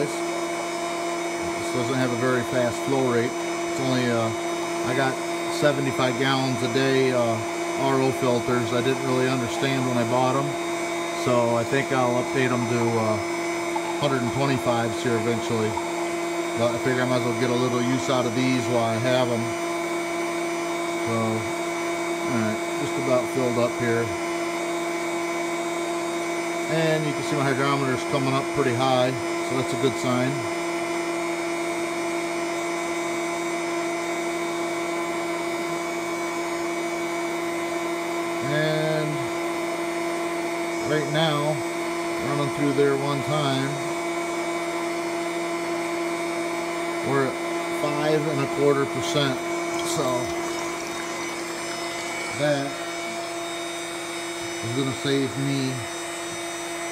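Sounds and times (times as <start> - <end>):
electric pump humming and hissing: 0.0 - 56.9.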